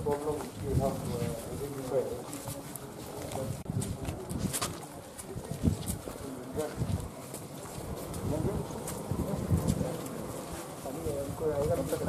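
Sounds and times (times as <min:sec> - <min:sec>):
street ambience: 0:00.0 - 0:12.0.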